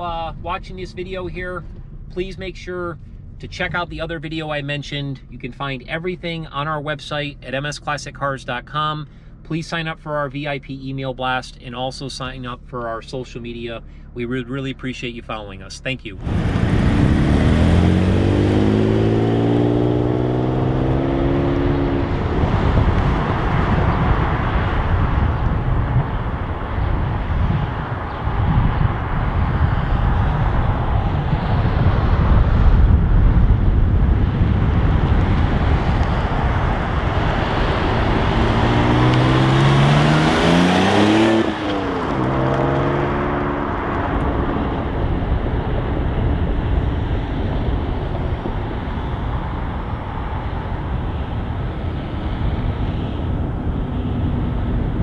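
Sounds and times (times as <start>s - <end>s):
car accelerating and passing: 16.2s - 55.0s.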